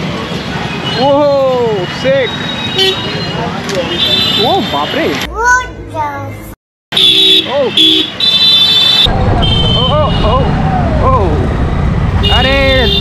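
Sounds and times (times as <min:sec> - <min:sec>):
vehicle horns honking: 0:01.8 - 0:05.3, 0:06.9 - 0:10.4, 0:12.2 - 0:13.0
low traffic rumble: 0:07.2 - 0:13.0.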